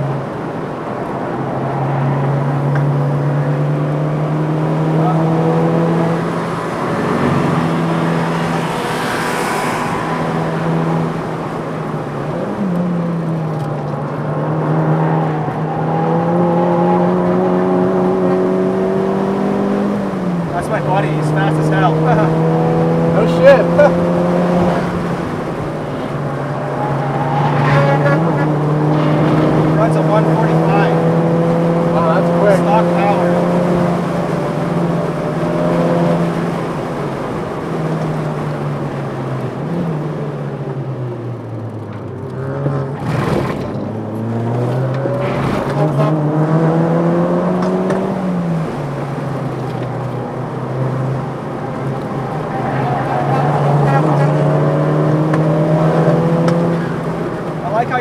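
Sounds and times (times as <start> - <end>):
car engine accelerating hard: 0.0 - 58.0.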